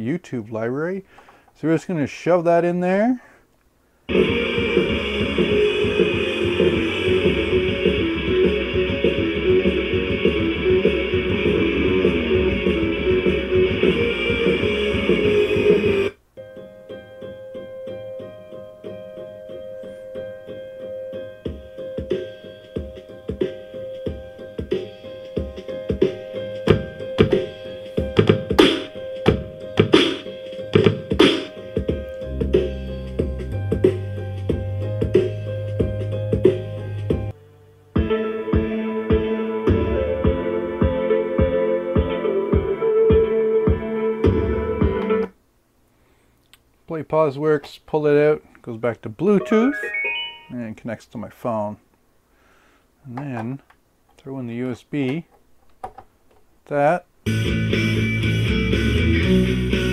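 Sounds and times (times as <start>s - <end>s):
dense loud music track: 4.1s - 16.1s
quiet music with held notes: 4.1s - 45.4s, 49.4s - 50.6s.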